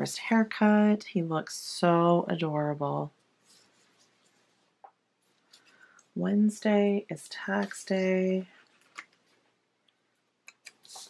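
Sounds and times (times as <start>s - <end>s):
hand rustling on paper: 3.2s - 5.9s, 8.6s - 11.0s.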